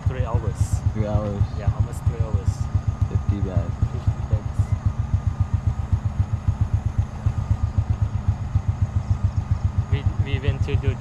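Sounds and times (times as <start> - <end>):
motorbike engine idling: 0.0 - 11.0.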